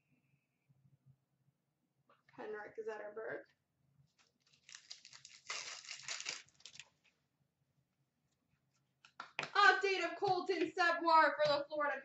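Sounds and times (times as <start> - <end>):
wrapper crinkling and tearing: 4.4 - 7.0.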